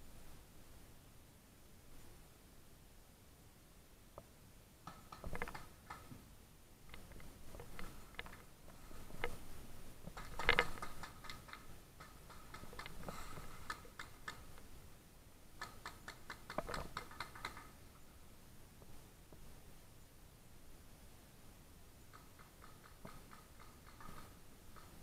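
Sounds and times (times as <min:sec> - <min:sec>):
faint sharp clicks and knocks: 0:04.1 - 0:14.8, 0:15.6 - 0:18.0, 0:22.0 - 0:25.0.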